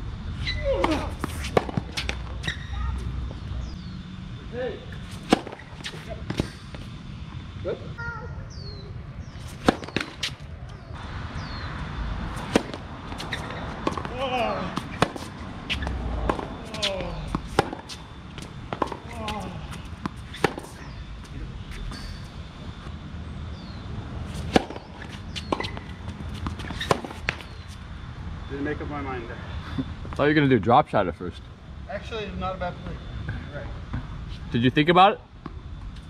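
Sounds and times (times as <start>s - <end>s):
tennis ball struck by rackets: 0.8s - 2.5s, 5.0s - 6.9s, 9.5s - 10.4s, 12.4s - 21.0s, 24.3s - 27.6s
ball bouncing on hard court: 12.4s - 19.4s.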